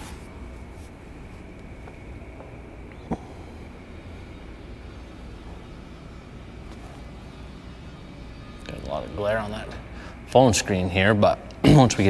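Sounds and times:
low room rumble: 0:00.0 - 0:12.0.

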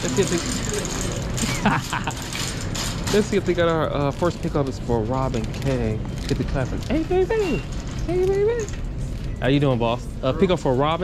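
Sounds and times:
shopping cart rattling: 0:00.0 - 0:11.0.

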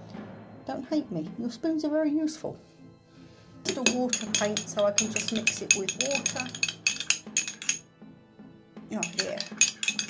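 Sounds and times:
spoon clinking against glass jar: 0:03.7 - 0:07.9, 0:09.0 - 0:10.0.

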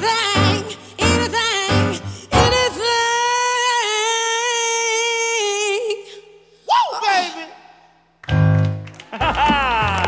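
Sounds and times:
vocal whoop: 0:09.4 - 0:10.0.

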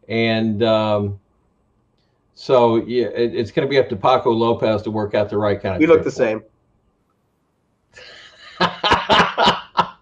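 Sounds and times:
man laughing: 0:08.0 - 0:10.0.

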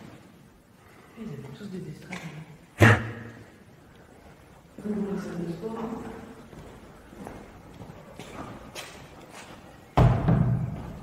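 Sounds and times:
footsteps on tiled floor: 0:03.4 - 0:11.0.

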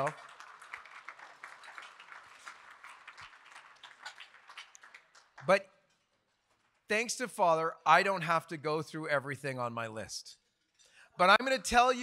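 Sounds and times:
audience applause: 0:00.0 - 0:05.5.

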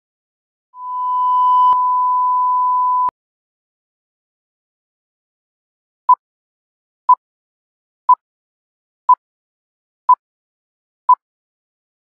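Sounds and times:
steady test tone beep: 0:00.8 - 0:03.1.

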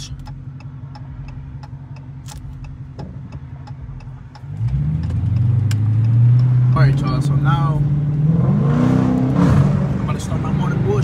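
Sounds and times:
car engine idling and accelerating: 0:00.0 - 0:11.0
turn signal ticking: 0:00.0 - 0:11.0.

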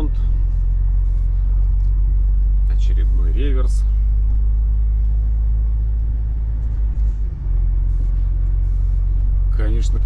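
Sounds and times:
truck engine and tyres rumbling: 0:00.0 - 0:10.0.

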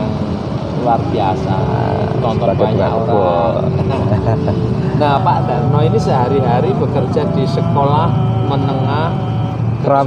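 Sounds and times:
low background rumble: 0:00.0 - 0:10.0
man talking: 0:00.8 - 0:10.0.

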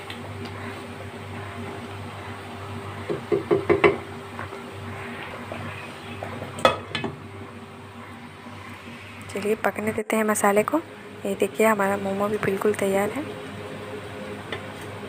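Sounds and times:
low steady hum: 0:00.0 - 0:15.0
wooden spatula knocking in pan: 0:03.0 - 0:04.0.

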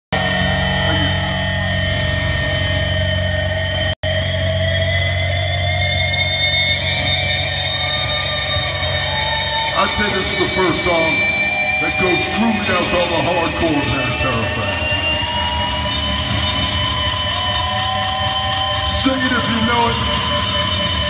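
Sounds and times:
droning amplified guitars and bass: 0:00.1 - 0:21.0.

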